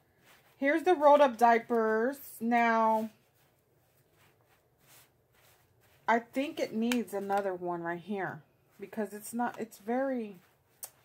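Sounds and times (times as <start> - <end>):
hands rustling diapers: 0.1 - 7.6.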